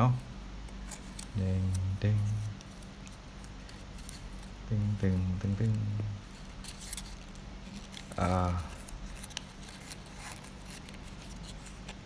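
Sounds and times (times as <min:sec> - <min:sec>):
low steady hum: 0:00.0 - 0:12.0
paper crinkling: 0:00.7 - 0:12.0.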